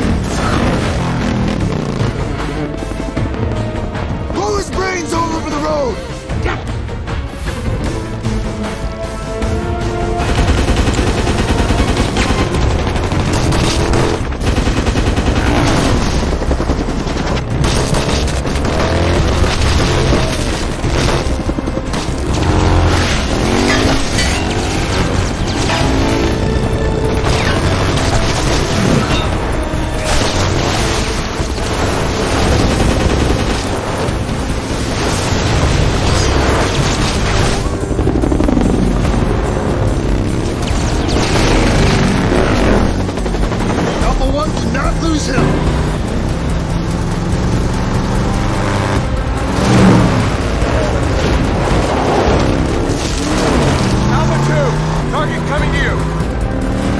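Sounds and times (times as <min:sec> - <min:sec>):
explosions and impacts: 0:00.0 - 0:04.2, 0:10.2 - 0:56.9
film score music: 0:00.0 - 0:56.9
machine gun firing bursts: 0:10.1 - 0:56.9.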